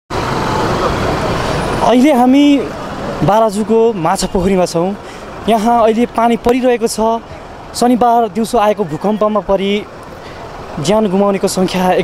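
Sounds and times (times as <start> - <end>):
traffic noise: 0.1 - 12.0
man speaking: 1.8 - 9.9, 10.8 - 12.0.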